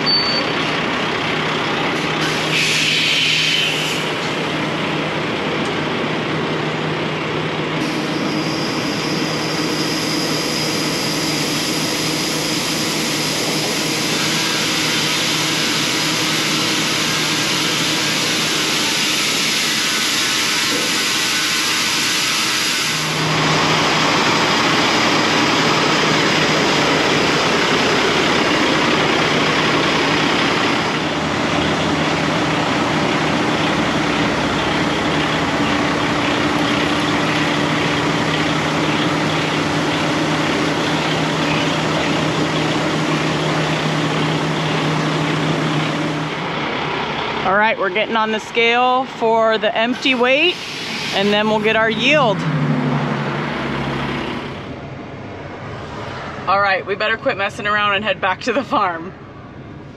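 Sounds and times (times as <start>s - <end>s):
diesel truck running: 0.0s - 21.3s, 22.9s - 59.9s
high mechanical whine: 0.0s - 48.8s.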